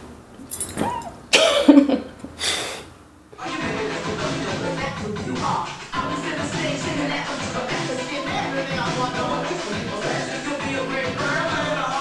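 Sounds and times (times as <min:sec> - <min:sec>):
woman laughing breathily: 0:01.4 - 0:02.8.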